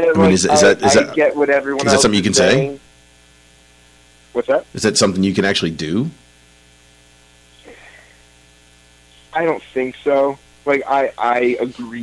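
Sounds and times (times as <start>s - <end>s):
voice trailing off: 0.0s - 2.8s
electrical mains hum: 0.0s - 12.0s.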